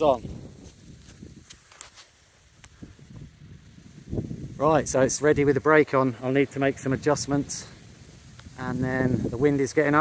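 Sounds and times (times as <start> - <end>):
wind rumbling on microphone: 0.0 - 10.0
faint ticks: 1.0 - 2.8, 8.2 - 8.6.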